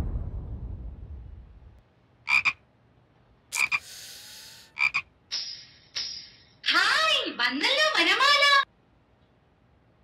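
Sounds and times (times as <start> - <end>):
frogs croaking: 2.2 - 2.6, 3.5 - 5.1.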